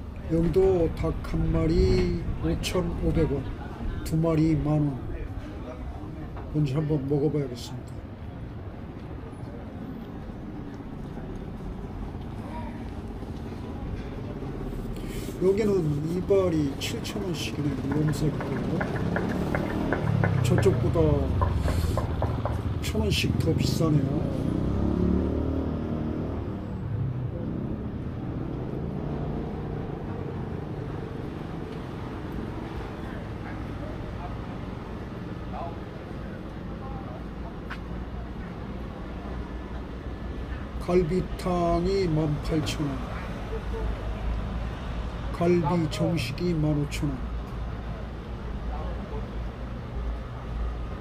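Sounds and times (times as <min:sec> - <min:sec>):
faint voices of passers-by: 0:00.0 - 0:51.0
low rumble of traffic: 0:00.0 - 0:51.0.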